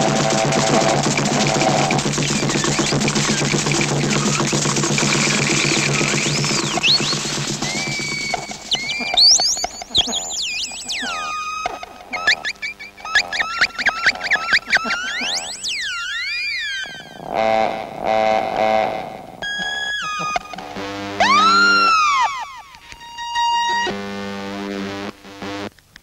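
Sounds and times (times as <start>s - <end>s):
swooping synthesized tones: 0.0s - 25.7s.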